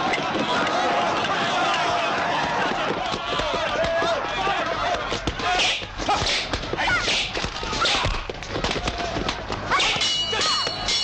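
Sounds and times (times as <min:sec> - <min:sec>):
people shouting and yelling: 0:00.0 - 0:11.0.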